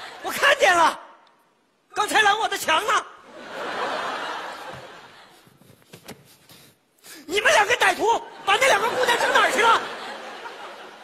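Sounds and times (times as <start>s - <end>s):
person speaking: 6.4s - 10.0s.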